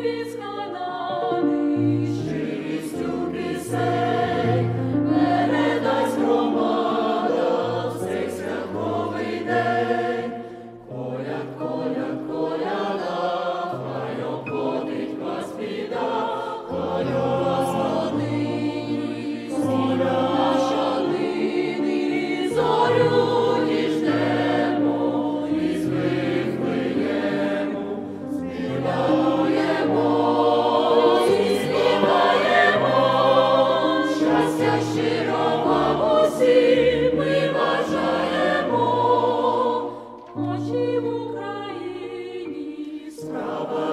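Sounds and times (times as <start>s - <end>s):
choir singing a carol: 0.0s - 43.9s.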